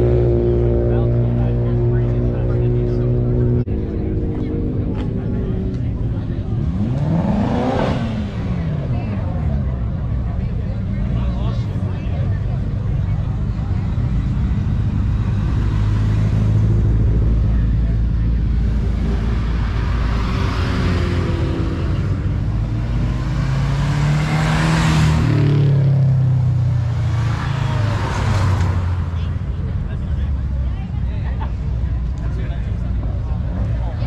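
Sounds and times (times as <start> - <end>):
car engine revving: 0.0 - 34.0
cars driving past: 0.0 - 34.0
crowd voices: 0.0 - 34.0.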